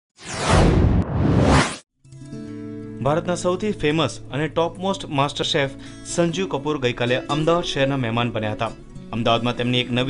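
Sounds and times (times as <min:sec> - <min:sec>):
whoosh sound effects: 0:00.2 - 0:01.8.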